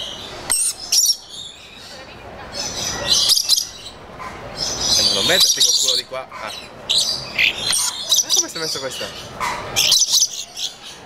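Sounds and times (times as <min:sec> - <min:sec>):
parrots shrill chatter: 0:00.0 - 0:11.0.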